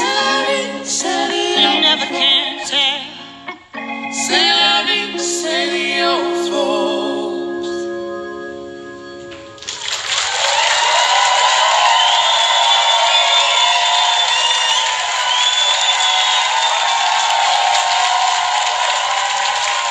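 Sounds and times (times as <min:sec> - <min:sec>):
band held chord: 0:01.4 - 0:09.6
audience applause and cheering: 0:09.6 - 0:19.9
whistles from audience: 0:11.6 - 0:17.9.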